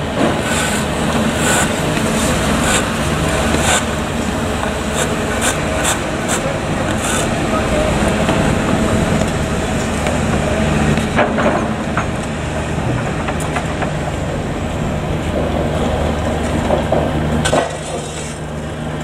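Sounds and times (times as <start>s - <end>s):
diesel engine hum: 0.0s - 19.0s.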